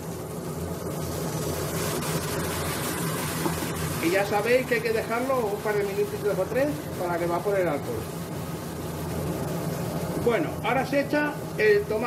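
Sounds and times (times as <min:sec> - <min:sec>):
steady low hum: 0:00.0 - 0:12.0
wine sizzling in a hot pan: 0:00.0 - 0:12.0.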